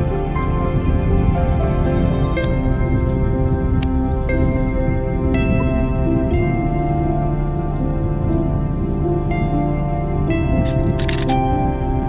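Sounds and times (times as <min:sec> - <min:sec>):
soft background music: 0:00.0 - 0:12.0
camera shutter clicks: 0:10.8 - 0:11.4.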